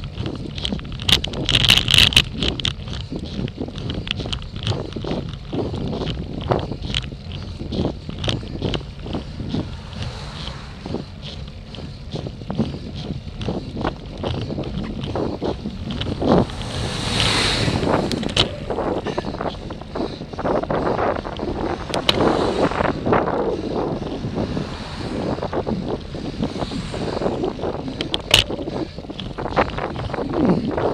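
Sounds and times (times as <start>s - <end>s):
sharp clicks and rattles: 0.0s - 30.9s
vehicles passing: 0.0s - 30.9s
wind buffeting microphone: 0.0s - 30.9s.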